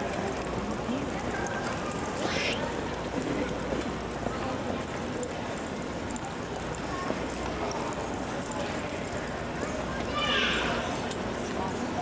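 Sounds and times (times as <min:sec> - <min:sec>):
background chatter of voices: 0:00.0 - 0:12.0
short high-pitched voice: 0:02.2 - 0:02.7.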